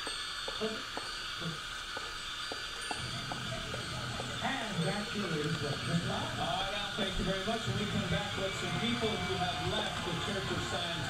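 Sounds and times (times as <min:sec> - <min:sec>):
steady high-pitched hiss: 0:00.0 - 0:11.0
thin ringing tones: 0:00.0 - 0:11.0.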